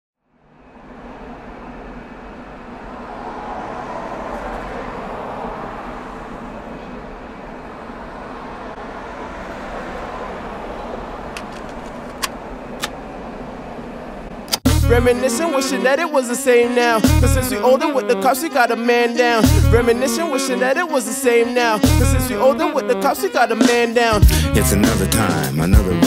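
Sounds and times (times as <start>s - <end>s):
street traffic noise: 0.2s - 26.0s
cassette tape deck clicks: 11.4s - 13.0s.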